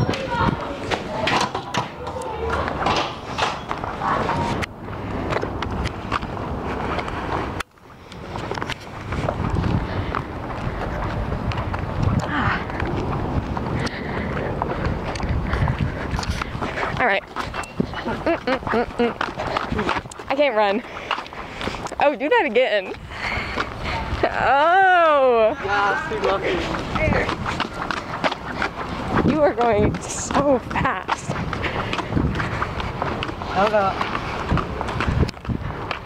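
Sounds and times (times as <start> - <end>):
indistinct voices: 0.0 - 5.0, 13.7 - 34.2
hurried footsteps: 0.0 - 36.0.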